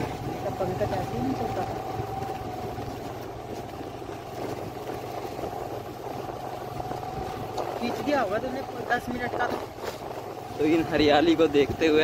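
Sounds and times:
small motorbike engine running: 0.0 - 12.0.

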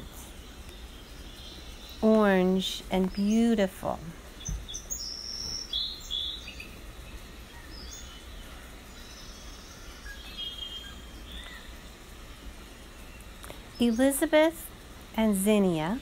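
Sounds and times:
steady low background noise: 0.0 - 16.0
birds chirping and calling: 4.3 - 14.3.

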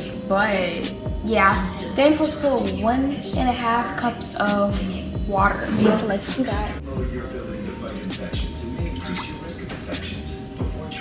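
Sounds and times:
background music with deep beat: 0.0 - 11.0.

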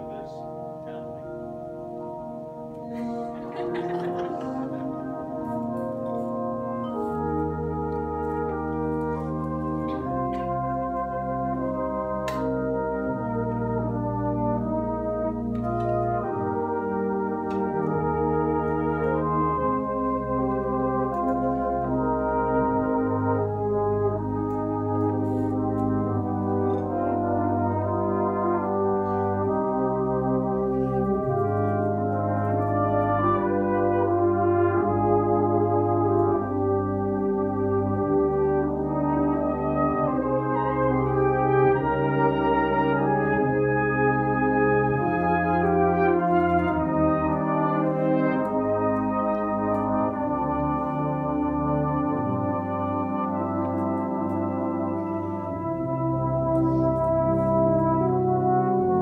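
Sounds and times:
brass band playing slow chords: 0.0 - 59.0.

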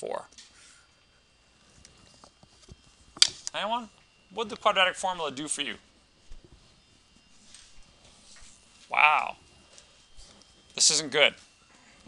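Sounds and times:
man exclaiming loudly: 8.9 - 9.4.

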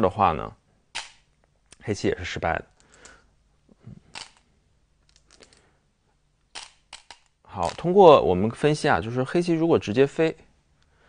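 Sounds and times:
game stones clicking: 6.5 - 7.9.

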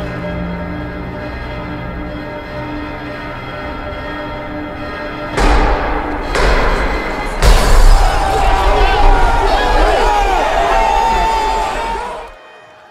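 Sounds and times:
sombre music with held notes: 0.0 - 12.9
loud noisy burst with deep thud: 5.4 - 9.6.

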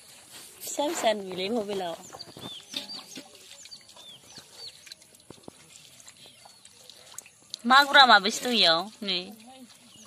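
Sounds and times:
birds chirping: 1.2 - 10.0.

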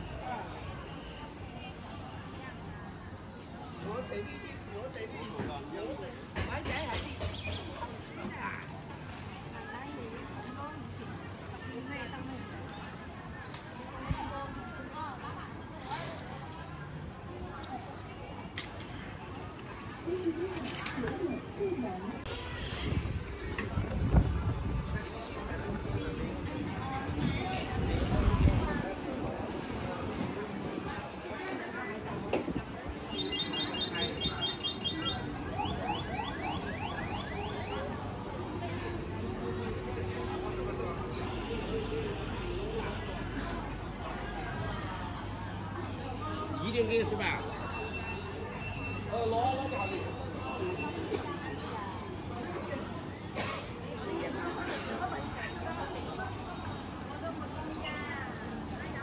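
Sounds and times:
steady street noise: 0.0 - 59.0
voices of passers-by: 0.0 - 59.0.

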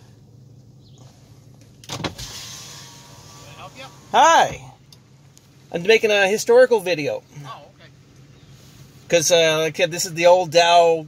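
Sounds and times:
car idling: 0.0 - 11.0
man speaking: 3.4 - 4.8, 5.7 - 8.0, 9.1 - 11.0.

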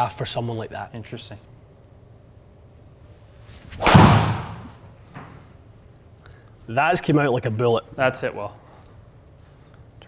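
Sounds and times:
driver striking golf ball: 3.8 - 4.8.

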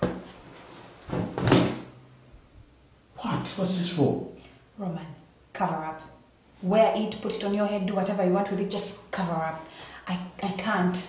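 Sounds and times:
jacket thumping onto table: 1.1 - 1.9.

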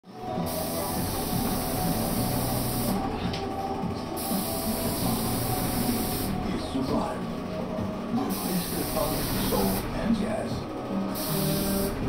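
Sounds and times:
sprayer motor humming: 0.2 - 12.0
spray gun hissing: 0.4 - 3.1, 4.1 - 6.5, 8.3 - 9.9, 11.1 - 12.0.

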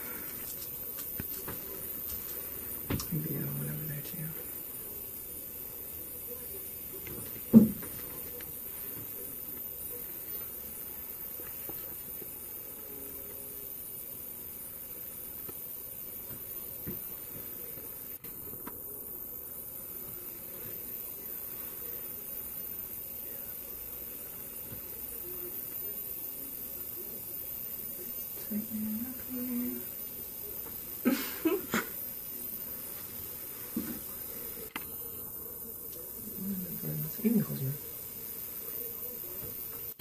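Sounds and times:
steady hiss: 0.0 - 40.0.

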